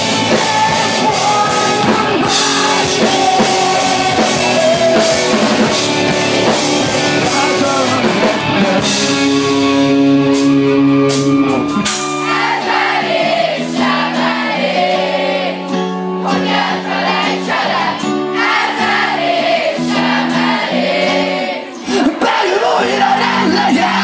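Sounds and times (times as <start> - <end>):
audience singing along: 0.0 - 9.4, 11.8 - 24.0
electric guitars ringing chords: 0.0 - 21.8
rock band playing: 0.0 - 24.0.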